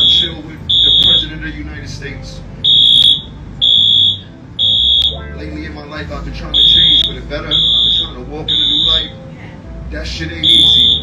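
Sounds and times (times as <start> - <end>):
electronic alarm beeping: 0.0 - 1.4, 2.6 - 5.2, 6.5 - 9.2, 10.4 - 11.0.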